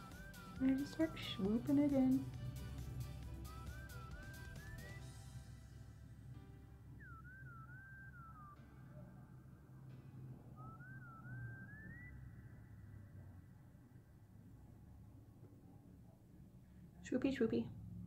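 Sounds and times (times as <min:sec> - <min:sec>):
faint high gliding melody: 0:00.0 - 0:14.6.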